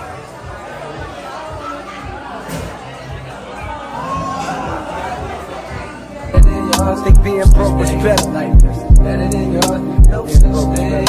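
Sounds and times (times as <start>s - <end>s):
people talking in a hubbub: 0.0s - 11.0s
music playing: 4.1s - 11.0s.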